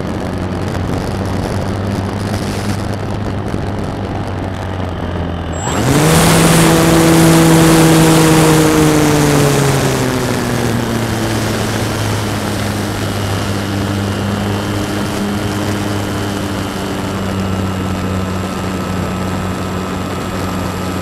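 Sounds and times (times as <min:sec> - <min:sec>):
electric motor high whine: 0:00.0 - 0:21.0
rushing air: 0:00.0 - 0:21.0.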